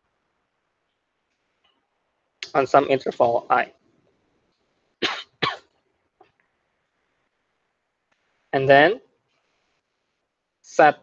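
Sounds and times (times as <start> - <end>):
person coughing: 5.0 - 5.7.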